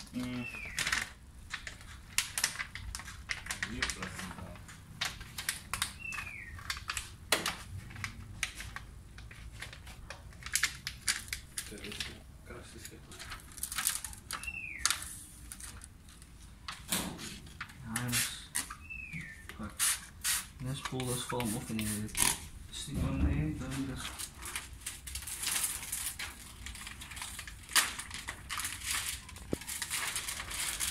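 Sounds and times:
plastic film crackling: 0.0 - 22.5, 23.5 - 30.9.

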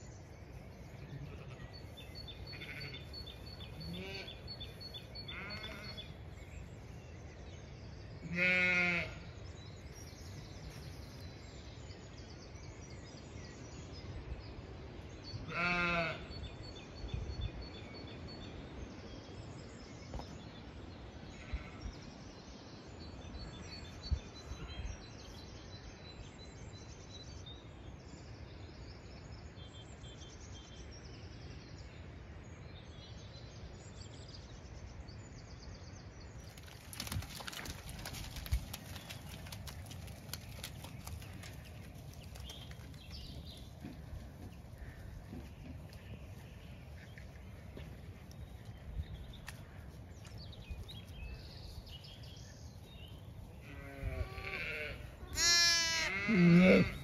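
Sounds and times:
birds chirping: 0.0 - 13.5, 35.3 - 57.0
low rumble of wind: 0.0 - 57.0
sheep bleating: 2.5 - 3.0, 3.9 - 4.4, 5.3 - 6.0, 8.3 - 9.2, 15.5 - 16.2, 53.6 - 57.0
sheep steps on muddy ground: 36.4 - 52.3.

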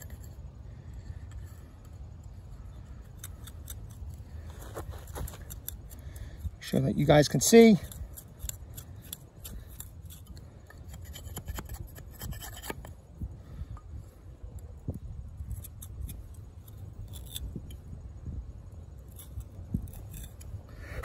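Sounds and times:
low steady rumble: 0.0 - 21.0
knife scraping wooden stick: 3.0 - 13.0, 15.4 - 17.9, 19.0 - 21.0.

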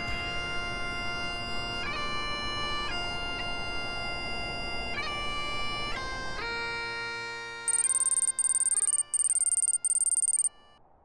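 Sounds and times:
high pulsing electronic ring: 7.7 - 10.5.

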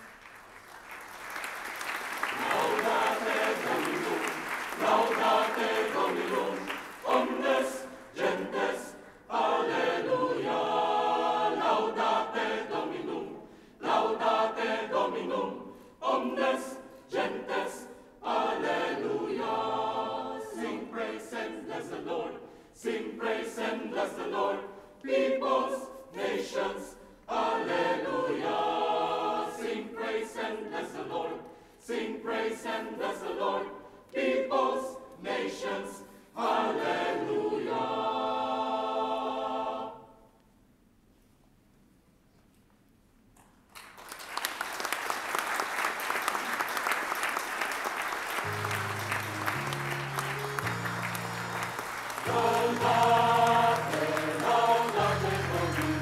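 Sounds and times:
choir singing: 2.1 - 40.4, 48.1 - 56.0.

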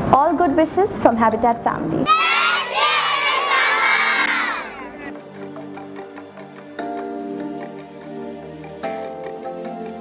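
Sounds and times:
children shouting and cheering: 2.0 - 5.1.

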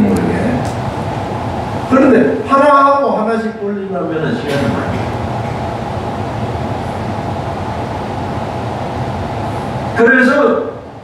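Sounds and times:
faint hum: 0.0 - 11.0
low rumbling background noise: 0.0 - 11.0.

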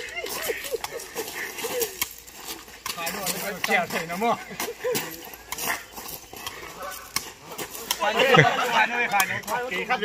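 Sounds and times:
men's excited voices: 0.0 - 10.0.

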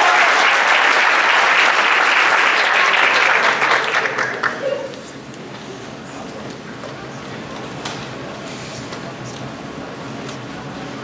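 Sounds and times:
audience murmur and rustle: 0.0 - 11.0.

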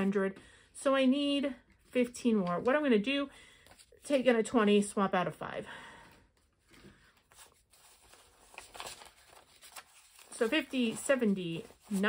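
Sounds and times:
paper banknotes rustling: 6.6 - 12.0.

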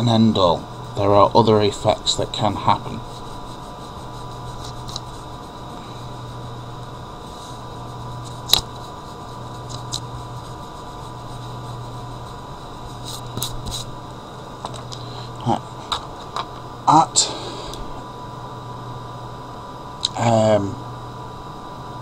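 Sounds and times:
low background hum: 0.0 - 22.0
pencil drawing on paper: 0.1 - 14.0.

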